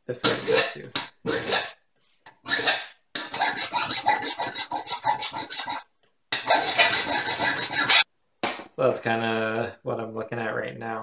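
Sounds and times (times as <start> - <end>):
hand file rasping on steel blade: 0.2 - 8.0.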